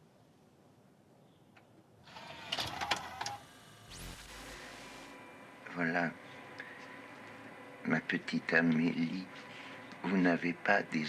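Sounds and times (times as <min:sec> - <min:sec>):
small mechanism whirring: 0:02.0 - 0:05.3.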